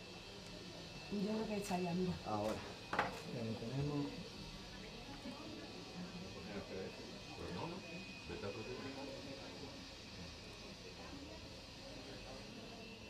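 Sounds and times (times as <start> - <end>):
faint voices talking: 0.0 - 13.0.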